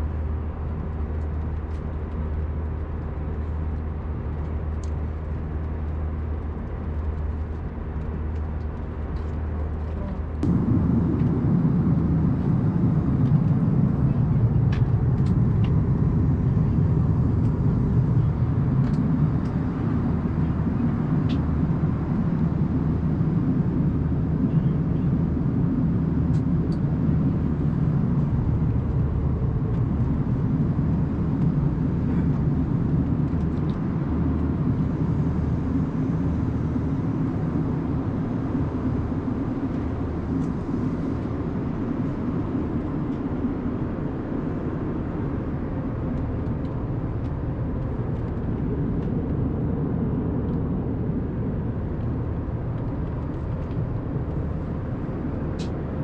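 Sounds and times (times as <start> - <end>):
airliner cabin engine rumble: 0.0 - 56.0.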